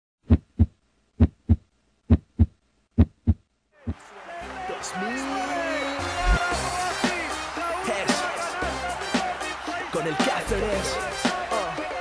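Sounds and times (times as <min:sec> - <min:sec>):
heartbeat thumps: 0:00.2 - 0:03.4, 0:06.2 - 0:06.4.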